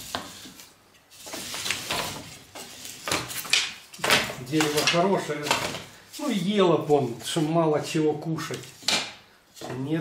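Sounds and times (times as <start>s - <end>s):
wooden boards clattering and scraping: 1.2s - 5.9s.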